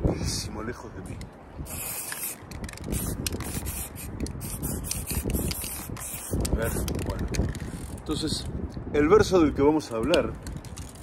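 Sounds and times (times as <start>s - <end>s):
spray-paint can hissing: 1.6s - 6.9s.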